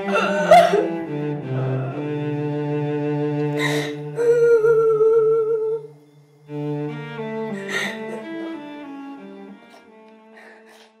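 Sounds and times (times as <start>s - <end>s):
hummed vocal note: 0.0s - 2.3s
low bowed-string drone: 0.0s - 10.7s.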